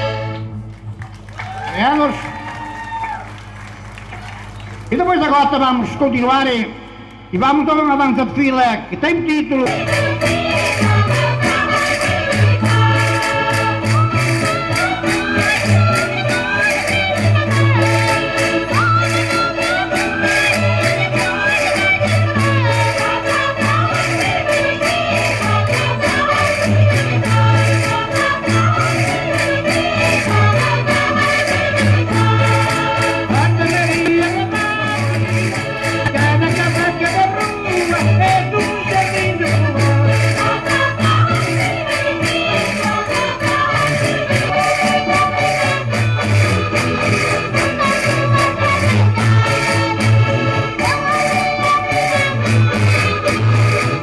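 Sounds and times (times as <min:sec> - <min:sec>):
folk dance music: 0:00.0 - 0:54.0.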